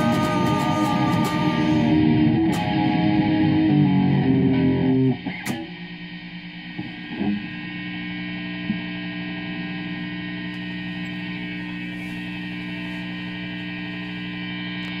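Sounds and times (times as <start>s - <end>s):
amplifier mains hum: 0.0s - 15.0s.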